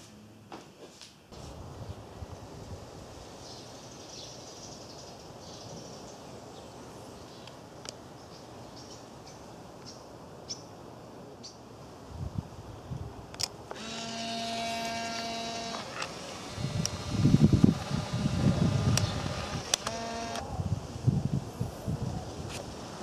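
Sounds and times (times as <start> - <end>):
wind on microphone: 1.4 - 3.4, 12.0 - 14.0, 16.3 - 23.0
camera shutter click: 13.4 - 17.1, 18.9 - 20.4
camera motor whirring: 13.7 - 20.4.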